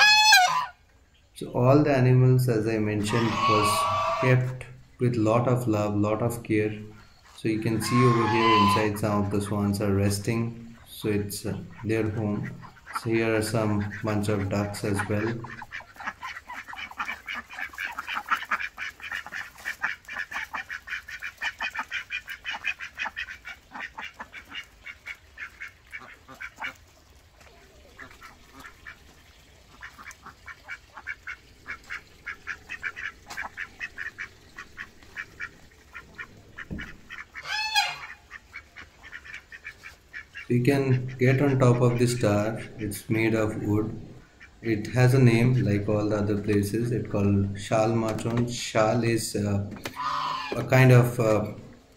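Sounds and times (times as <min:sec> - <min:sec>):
ducks quacking: 0:00.0 - 0:00.8, 0:01.4 - 0:51.7
loud wavering duck call: 0:00.0 - 0:00.8, 0:03.0 - 0:04.4, 0:07.8 - 0:09.0, 0:37.4 - 0:38.3, 0:50.0 - 0:50.6.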